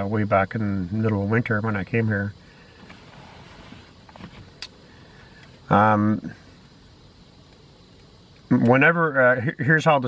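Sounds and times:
car cabin background noise: 0.0s - 10.0s
faint rustles: 2.4s - 5.7s.

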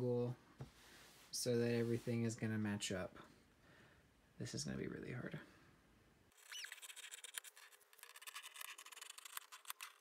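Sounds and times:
brief squeak: 6.4s - 7.0s.

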